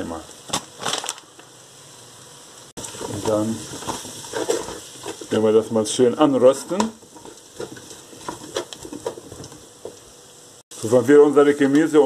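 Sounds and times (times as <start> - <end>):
vegetables frying in a pot: 0.0 - 12.0.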